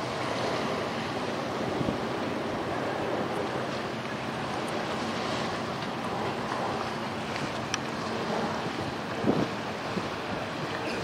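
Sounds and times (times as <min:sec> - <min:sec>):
faint boat engine hum: 0:00.0 - 0:11.0
wind buffeting microphone: 0:00.0 - 0:11.0.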